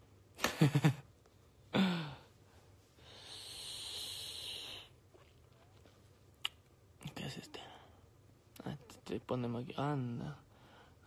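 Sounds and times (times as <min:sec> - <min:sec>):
man exhaling through pursed lips: 0:03.0 - 0:04.9
whispered vocal sound: 0:07.0 - 0:08.0.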